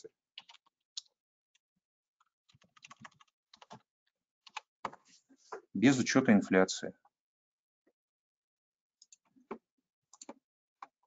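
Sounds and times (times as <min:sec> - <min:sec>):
faint typing on keyboard: 0:00.0 - 0:01.2, 0:02.2 - 0:05.1, 0:09.0 - 0:11.0.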